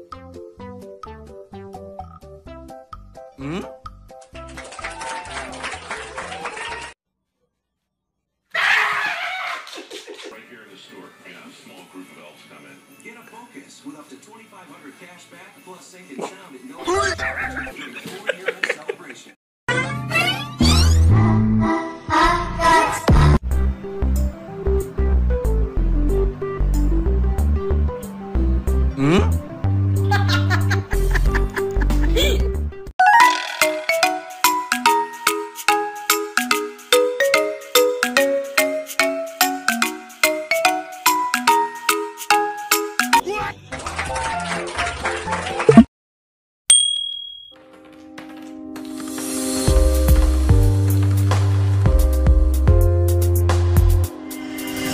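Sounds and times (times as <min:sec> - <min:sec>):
chiming tune: 0:46.7 - 0:47.6.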